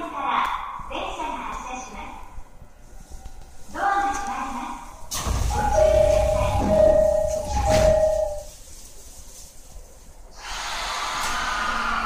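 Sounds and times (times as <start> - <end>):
train hiss with faint steady tones: 0.0 - 12.0.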